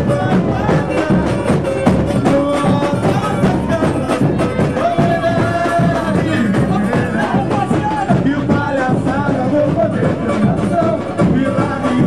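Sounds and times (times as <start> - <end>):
samba drums and percussion: 0.0 - 12.0.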